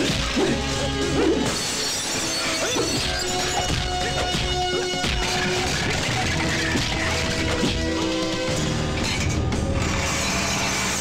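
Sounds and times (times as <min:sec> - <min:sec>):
action film score: 0:00.0 - 0:11.0.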